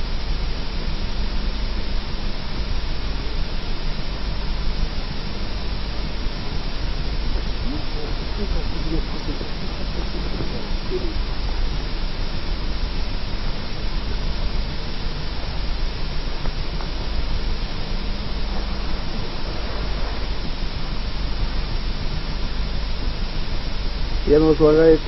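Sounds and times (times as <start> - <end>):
low hum: 0.0 - 25.0
tape hiss: 0.0 - 25.0.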